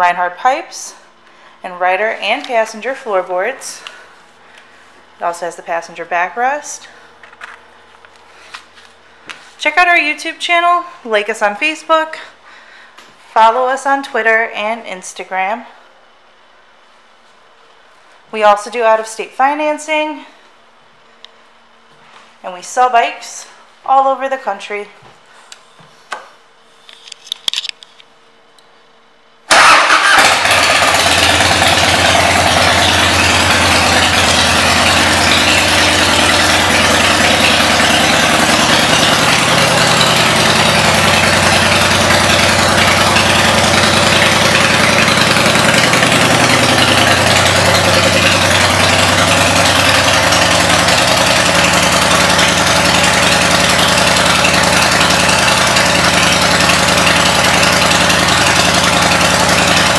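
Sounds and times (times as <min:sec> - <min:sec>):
motorcycle engine idling: 0:29.5 - 0:59.9.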